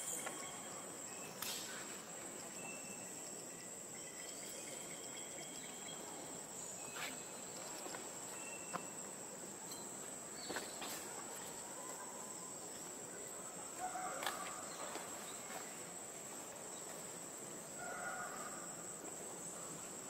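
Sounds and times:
high-pitched insect chorus: 0.0 - 20.0.

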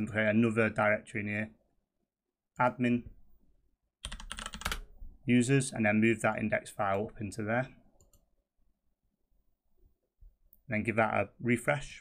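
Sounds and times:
computer keyboard typing: 4.0 - 4.9.

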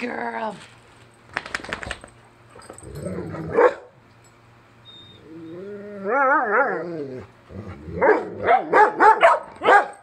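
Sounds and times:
dog moaning: 4.9 - 8.4.

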